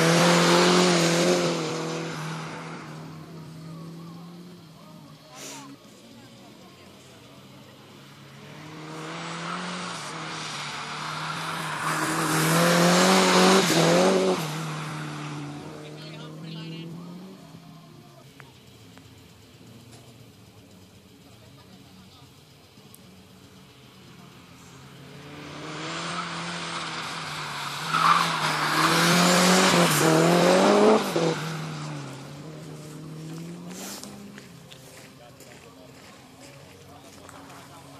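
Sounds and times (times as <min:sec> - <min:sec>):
car engine running hard: 0:00.0 - 0:37.9
car sliding on wet asphalt: 0:00.0 - 0:37.9.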